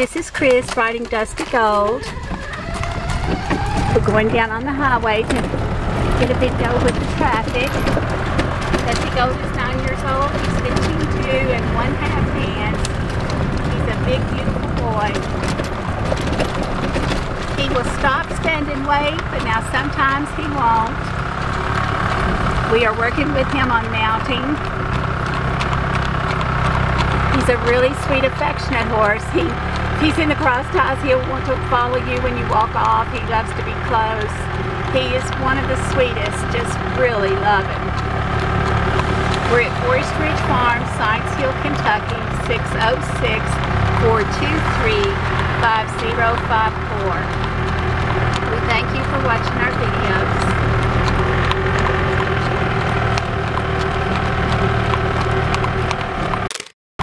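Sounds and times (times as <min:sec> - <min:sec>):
horse hooves clip-clopping on road: 0:00.0 - 0:56.5
golf cart motor running: 0:00.0 - 0:56.7
vehicle engine rumbling: 0:00.0 - 0:56.7.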